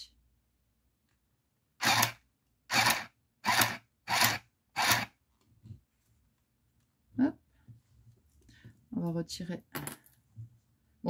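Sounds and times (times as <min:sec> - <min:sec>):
mini sewing machine stitching: 0:01.8 - 0:05.1.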